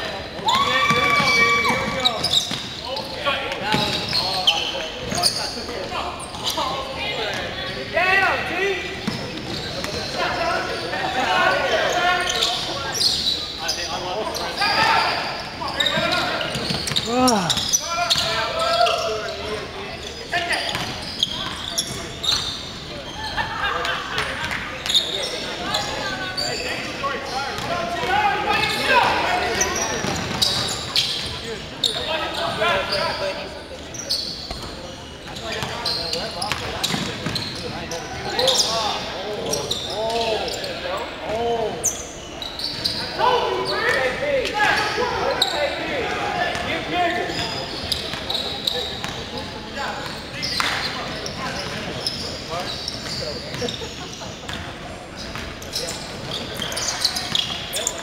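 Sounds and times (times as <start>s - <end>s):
players calling out: 0.2s - 58.0s.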